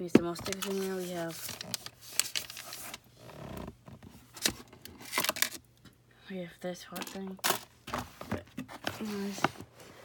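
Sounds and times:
plastic drawers rummaged through: 0.2 - 5.6.

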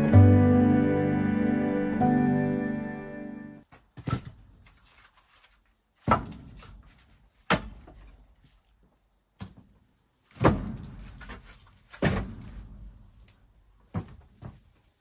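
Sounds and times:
background music: 0.0 - 3.6
logs knocking onto a stack: 6.0 - 6.8, 7.5 - 8.1, 10.3 - 12.9.

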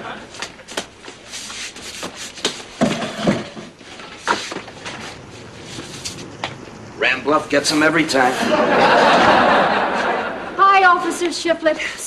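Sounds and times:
studio audience laughter: 8.2 - 10.6.

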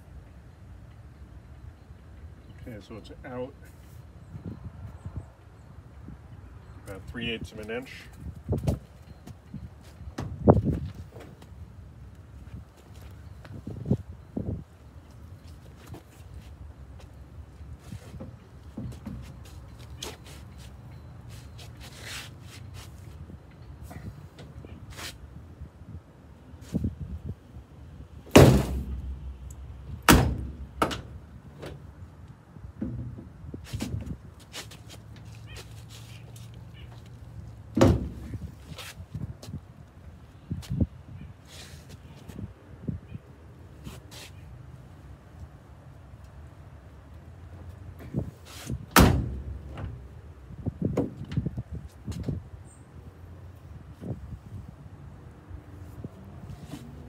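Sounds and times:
steel door thunking shut: 28.3 - 29.3, 30.0 - 31.8, 37.8 - 38.4, 48.9 - 50.0.

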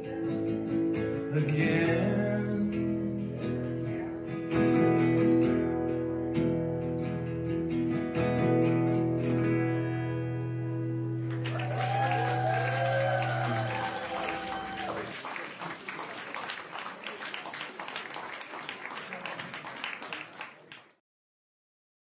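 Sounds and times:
acoustic guitar chord ringing: 0.3 - 11.4
audience clapping: 11.2 - 21.0
audience cheering: 11.3 - 20.9.

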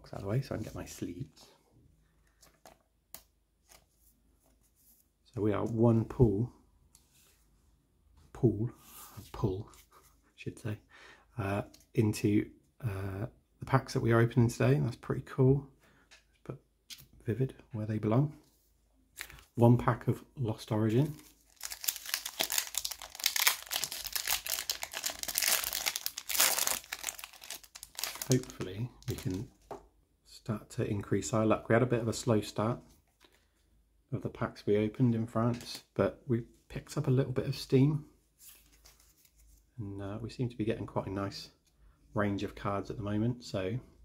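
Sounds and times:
plastic card sleeve rustling: 2.2 - 5.0, 21.1 - 29.8, 38.4 - 39.6
foil wrapper crinkling: 21.3 - 29.4
foil pack tearing open: 21.5 - 28.4.

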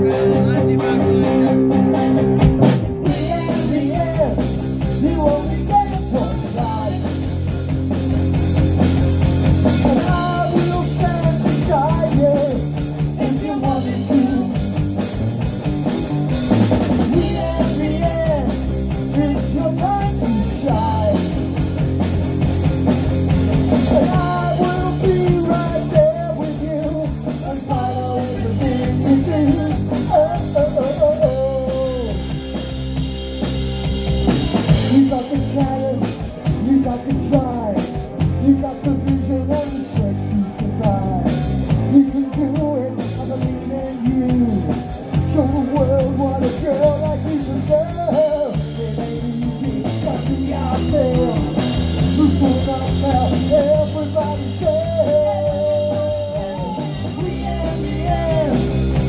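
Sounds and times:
man singing: 0.0 - 2.0, 2.6 - 7.8, 9.6 - 32.8, 34.3 - 59.0
bass guitar: 0.0 - 59.0
drum kit: 0.0 - 59.0
electric guitar: 0.0 - 59.0.

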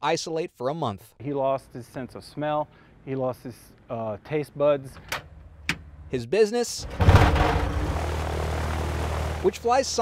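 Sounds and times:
propeller aircraft engine starting: 6.8 - 10.0.

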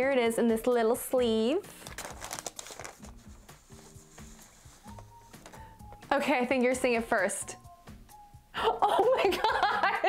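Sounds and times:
soft background music: 0.0 - 10.0
paper sleeve rustling: 1.7 - 5.8.

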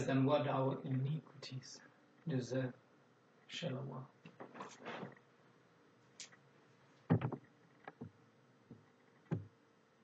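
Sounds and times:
phone handling knocks: 7.1 - 8.1.

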